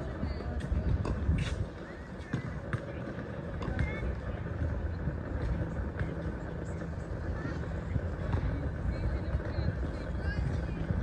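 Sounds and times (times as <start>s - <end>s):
low steady rumble: 0.0s - 11.0s
people talking: 0.0s - 11.0s.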